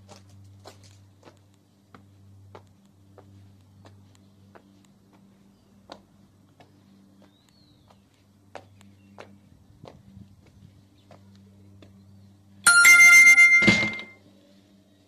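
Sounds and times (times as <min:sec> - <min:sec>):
ringing bell-like chime: 0:12.7 - 0:14.2.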